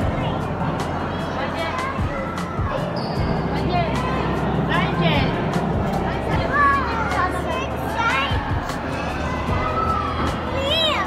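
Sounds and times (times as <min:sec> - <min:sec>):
background music: 0:00.0 - 0:11.0
crowd chatter: 0:00.0 - 0:11.0.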